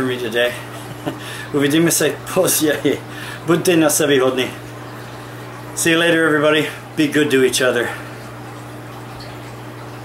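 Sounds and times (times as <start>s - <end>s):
equipment low hum: 0.0s - 10.0s.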